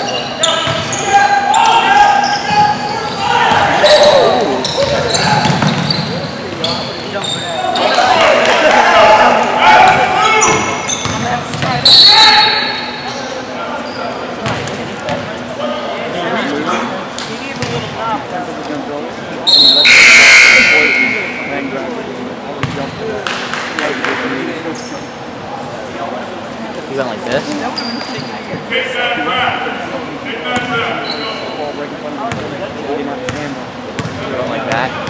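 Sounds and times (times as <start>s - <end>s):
players calling out: 0.0s - 16.8s, 19.4s - 22.9s.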